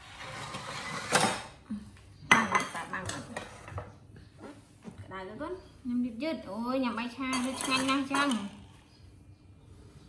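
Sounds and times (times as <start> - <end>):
metal spatula scraping a wok: 0.0 - 1.4
cookware and dishes clattering: 0.2 - 1.6, 2.3 - 4.0, 7.0 - 8.7.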